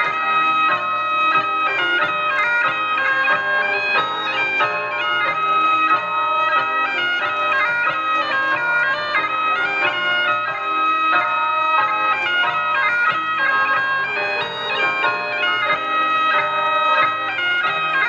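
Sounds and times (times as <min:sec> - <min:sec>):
bagpipe playing a dance tune: 0:00.0 - 0:18.0.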